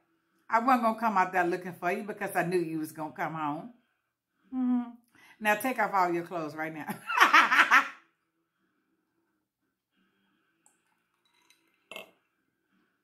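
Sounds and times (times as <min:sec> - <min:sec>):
woman laughing: 0:06.9 - 0:08.0.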